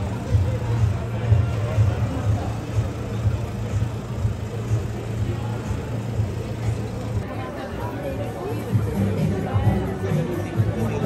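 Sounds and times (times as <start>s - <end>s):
passers-by talking: 0.0s - 11.0s
traffic running: 0.0s - 11.0s
background music: 7.2s - 11.0s.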